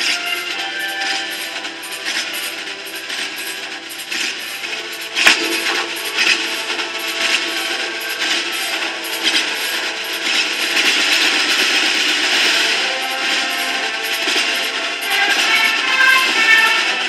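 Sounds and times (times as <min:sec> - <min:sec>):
clarinets in marching band: 0:00.0 - 0:17.0.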